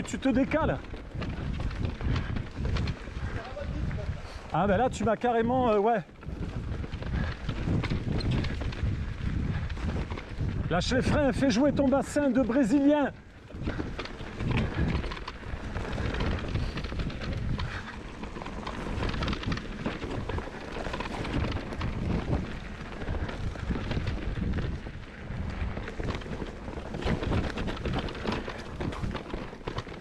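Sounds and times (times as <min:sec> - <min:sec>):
bike knocks and rattles: 0:00.0 - 0:04.1, 0:06.1 - 0:12.8, 0:13.4 - 0:30.0
bike tyre rumble on dirt: 0:00.0 - 0:30.0.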